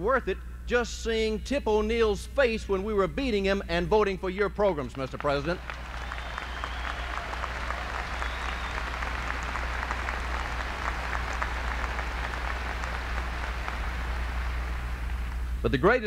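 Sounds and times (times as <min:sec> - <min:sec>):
audience applauding: 0:05.1 - 0:15.6.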